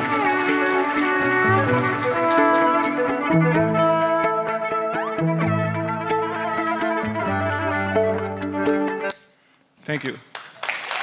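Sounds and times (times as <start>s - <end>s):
layered violins playing: 0.0s - 9.2s
low string line: 0.0s - 9.2s.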